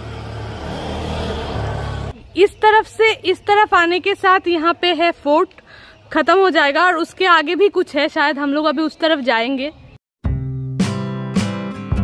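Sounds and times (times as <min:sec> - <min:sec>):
vehicle engine humming: 0:00.0 - 0:04.2.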